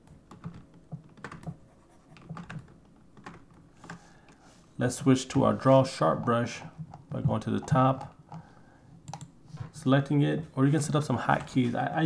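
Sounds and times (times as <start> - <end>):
keyboard and mouse clicks: 0.0 - 4.0, 6.2 - 9.3.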